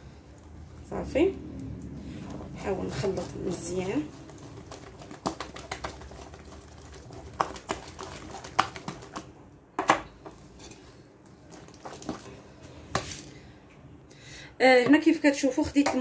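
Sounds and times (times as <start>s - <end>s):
batter squelching: 0.0s - 13.4s.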